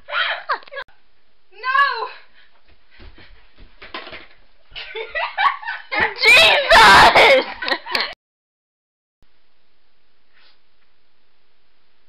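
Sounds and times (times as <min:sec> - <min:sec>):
loud vocal outburst: 0:06.2 - 0:07.4.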